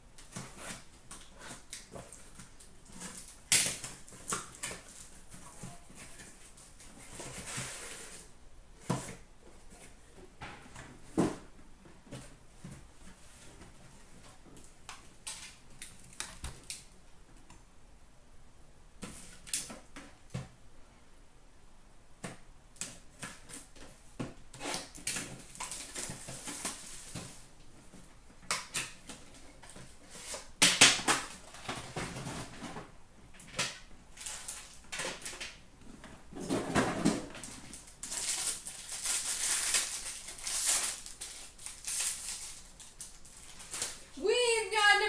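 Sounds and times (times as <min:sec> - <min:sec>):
cardboard and wrapper rustling: 0:24.6 - 0:28.1, 0:34.1 - 0:45.0.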